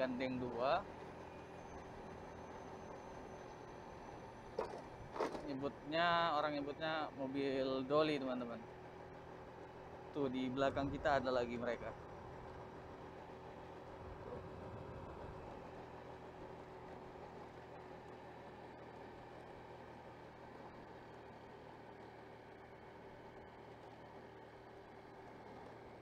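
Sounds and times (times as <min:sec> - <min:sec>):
road and wind noise: 0:00.0 - 0:26.0
scooter engine running: 0:00.0 - 0:26.0.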